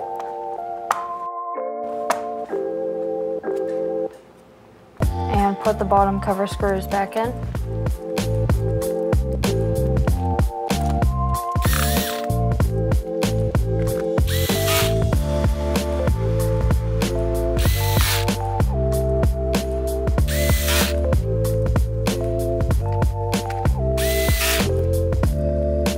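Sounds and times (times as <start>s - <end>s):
background music with beat: 0.0s - 4.2s, 5.0s - 25.9s
electric screwdriver whirring: 11.6s - 12.3s, 14.3s - 15.1s, 17.6s - 18.3s, 20.3s - 21.0s, 24.0s - 24.7s.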